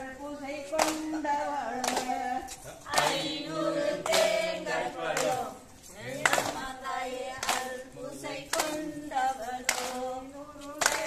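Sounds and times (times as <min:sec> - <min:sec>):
women singing unaccompanied: 0:00.0 - 0:11.0
group hand claps: 0:00.7 - 0:11.0.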